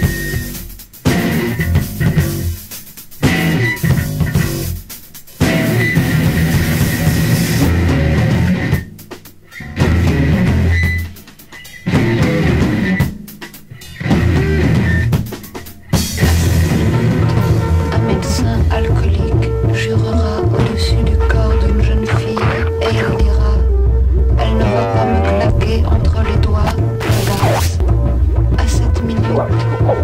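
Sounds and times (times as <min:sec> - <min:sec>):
rock band playing loud: 0:00.0 - 0:23.4, 0:24.0 - 0:30.0.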